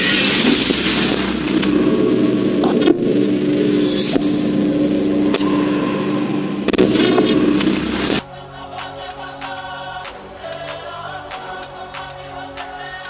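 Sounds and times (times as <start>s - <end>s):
loud noisy sweep: 0.0s - 10.6s
low drone: 0.0s - 12.8s.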